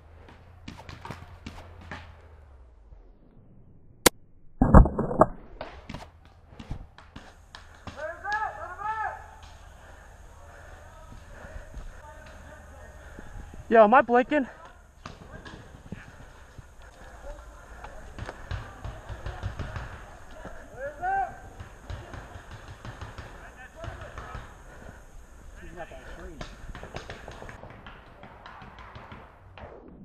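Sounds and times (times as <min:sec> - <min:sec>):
low thumps: 0:04.0 - 0:05.6
distant voices calling out: 0:07.6 - 0:27.6.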